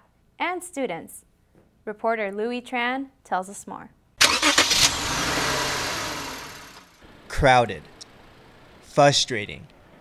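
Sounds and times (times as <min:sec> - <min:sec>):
car engine starting and idling: 0:04.2 - 0:08.7.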